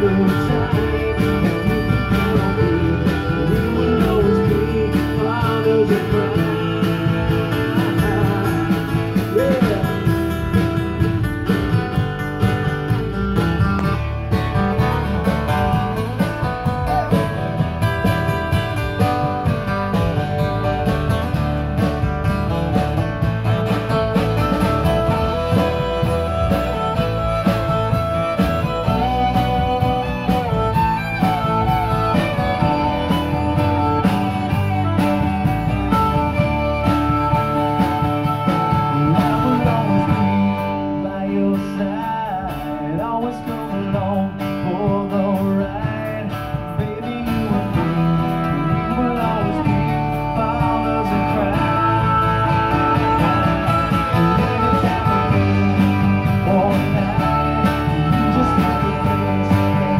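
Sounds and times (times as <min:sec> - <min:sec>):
acoustic band playing: 0:00.0 - 0:59.9
acoustic guitars: 0:00.0 - 0:59.9.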